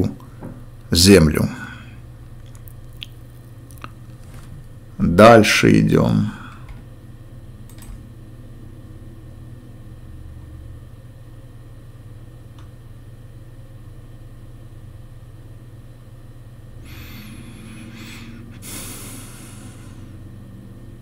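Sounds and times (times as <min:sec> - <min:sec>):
low background hum: 0:00.0 - 0:21.0
faint high whine: 0:13.3 - 0:21.0.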